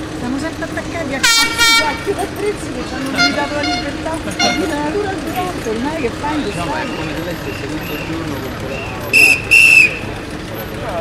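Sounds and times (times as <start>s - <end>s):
crowd chatter: 0.0s - 11.0s
high-pitched whistle blasts: 8.7s - 10.1s.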